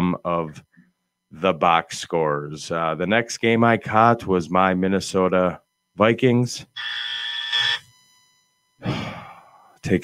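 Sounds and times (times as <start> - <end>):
man sighing: 8.8 - 9.7.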